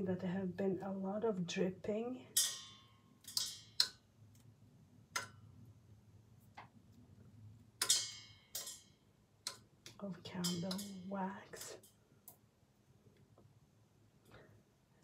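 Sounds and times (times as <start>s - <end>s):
knocks and clinks on stainless steel: 7.8s - 9.0s, 10.4s - 11.1s.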